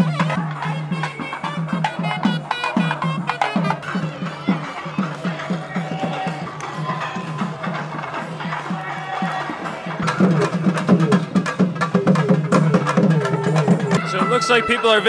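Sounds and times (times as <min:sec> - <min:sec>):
barrel drum beating: 0:00.0 - 0:15.0.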